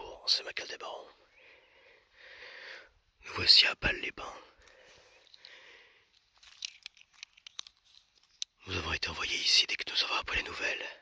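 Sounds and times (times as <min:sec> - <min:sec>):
faint breaths: 0:00.9 - 0:03.1, 0:04.2 - 0:06.7.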